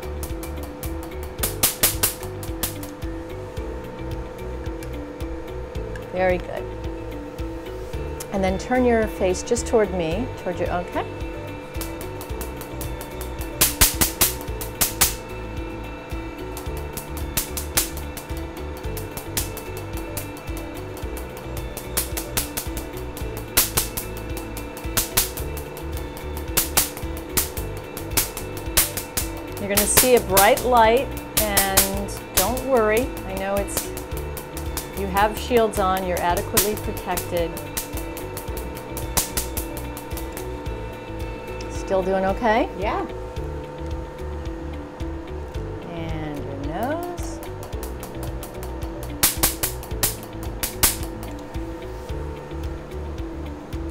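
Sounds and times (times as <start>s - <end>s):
background music: 0.0s - 53.9s
steady hum: 0.0s - 53.9s
laser handpiece snapping: 0.2s - 3.0s, 11.8s - 15.2s, 26.4s - 40.5s, 47.7s - 51.5s.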